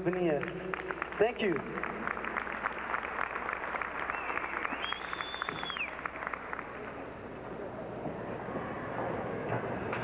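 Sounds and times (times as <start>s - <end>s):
audience applauding: 0.0s - 7.1s
long high whistle: 4.1s - 5.9s.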